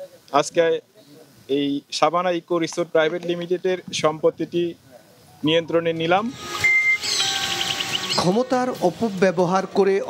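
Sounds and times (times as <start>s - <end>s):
birds chirping and calling: 6.3s - 8.8s
whistled note: 6.4s - 8.4s
man's voice: 8.2s - 10.0s.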